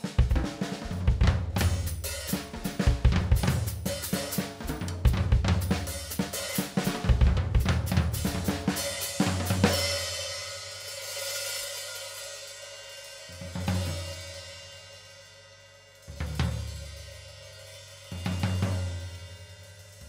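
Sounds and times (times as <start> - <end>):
drum kit playing: 0.0 - 15.0, 16.0 - 20.0.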